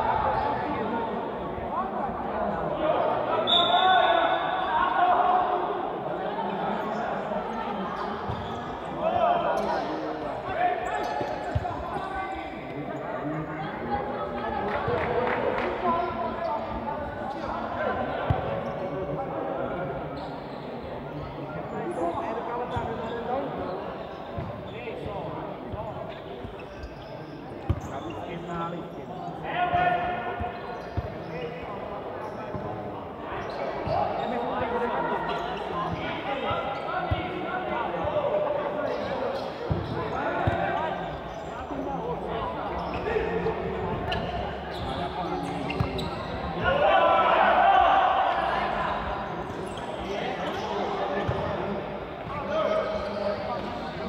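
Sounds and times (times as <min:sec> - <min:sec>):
shouting and chatter in sports hall: 0:00.0 - 0:54.0.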